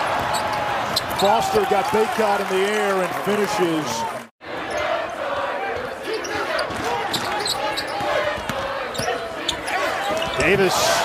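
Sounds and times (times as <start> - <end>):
shoe squeaks: 6.2 - 8.1, 8.9 - 10.6.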